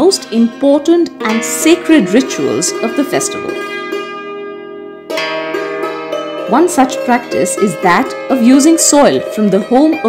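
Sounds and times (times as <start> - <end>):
plucked string chords: 0.0 - 10.0.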